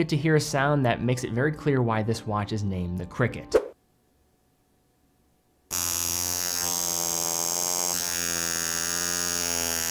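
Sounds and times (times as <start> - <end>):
wristwatch alarm buzzing: 5.7 - 9.9.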